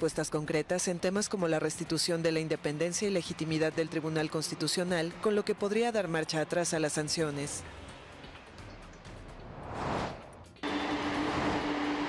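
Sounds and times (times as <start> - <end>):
traffic noise: 2.4 - 12.0
transition swoosh: 9.4 - 11.8
outdoor machine noise: 10.5 - 12.0.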